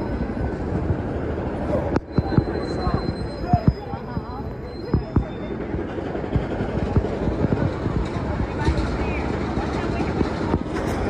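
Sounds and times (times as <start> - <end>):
crowd chatter: 0.0 - 11.0
traffic noise: 0.0 - 11.0.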